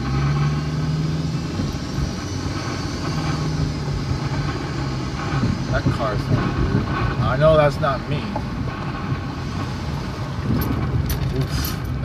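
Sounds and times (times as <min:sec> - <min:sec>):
car engine and road noise: 0:00.0 - 0:12.0.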